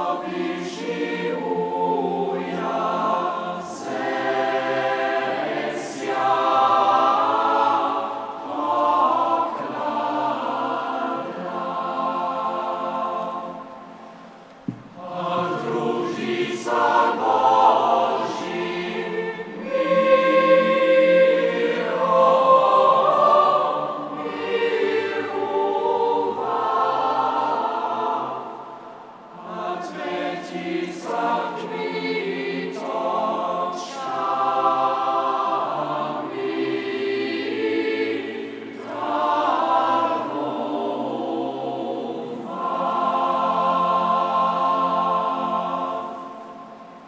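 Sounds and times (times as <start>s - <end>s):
youth choir singing in parts: 0.0s - 47.0s.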